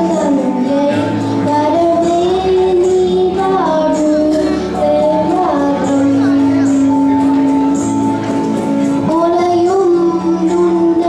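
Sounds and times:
accompanying music: 0:00.0 - 0:11.0
boy singing into microphone: 0:00.0 - 0:11.0.

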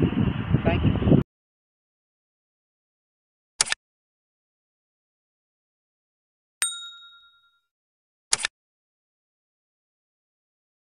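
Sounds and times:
ding sound effect: 0:06.6 - 0:07.7.

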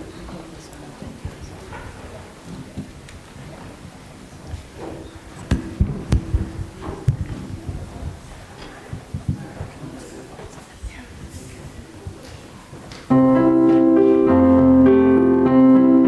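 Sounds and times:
microphone handling thumps: 0:04.4 - 0:10.0.

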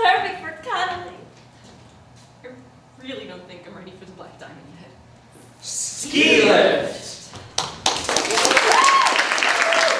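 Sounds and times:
audience applause: 0:07.5 - 0:09.9.

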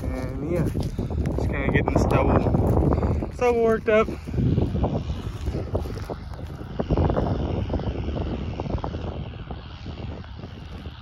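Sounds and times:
distant tractor engine drone: 0:00.0 - 0:11.0
wind rumbling on microphone: 0:00.0 - 0:11.0.

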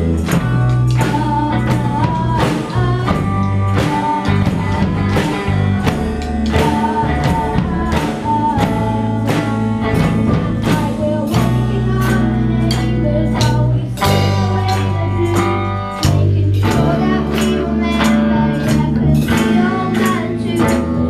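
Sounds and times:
bass guitar: 0:00.0 - 0:21.0
drum kit: 0:00.0 - 0:21.0
electric guitar: 0:00.0 - 0:21.0.

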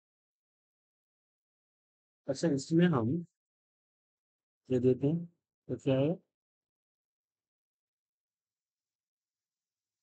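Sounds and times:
man speaking: 0:02.3 - 0:03.3, 0:04.7 - 0:06.3.

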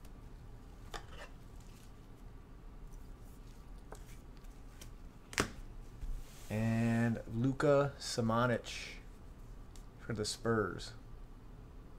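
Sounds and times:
low steady hum: 0:00.0 - 0:11.9.

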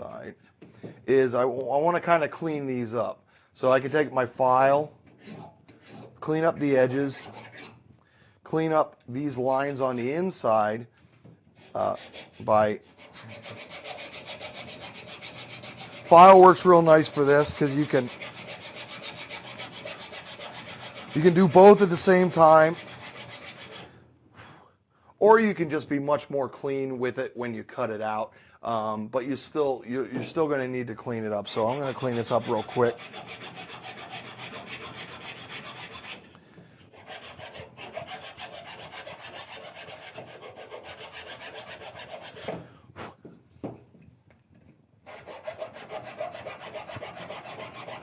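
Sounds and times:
hand file rasping on plastic: 0:05.1 - 0:06.2, 0:06.8 - 0:07.8, 0:11.6 - 0:23.9, 0:31.4 - 0:42.6, 0:45.0 - 0:48.0.

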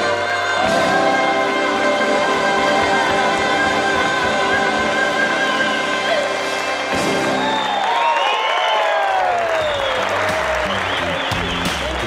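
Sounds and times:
audience applauding: 0:04.7 - 0:12.0
audience cheering: 0:05.5 - 0:12.0.

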